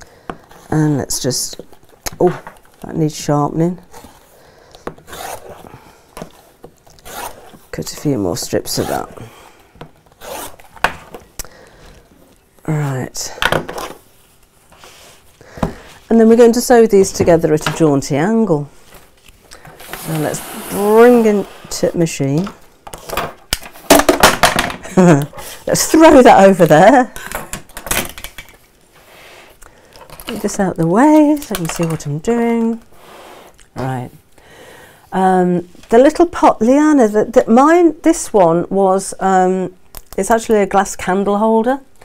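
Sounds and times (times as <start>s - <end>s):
rotary cutter rasping through fabric: 7.0s - 7.6s
cloth rustling: 13.7s - 22.8s.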